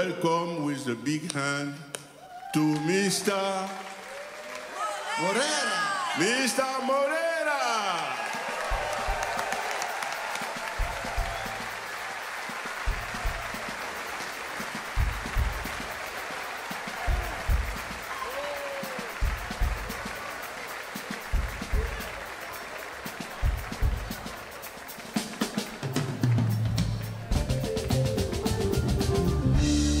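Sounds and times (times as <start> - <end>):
audience applauding: 2.4 - 29.4
low thumping band beat: 8.5 - 30.0.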